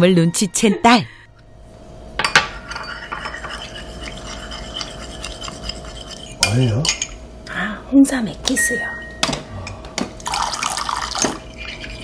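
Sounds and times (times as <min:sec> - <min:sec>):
metal spoon scraping porcelain cup: 0:02.6 - 0:07.1, 0:11.4 - 0:12.0.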